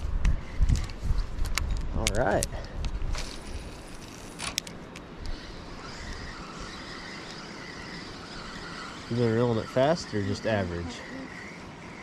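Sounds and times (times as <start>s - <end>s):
fishing reel whirring: 3.1s - 12.0s.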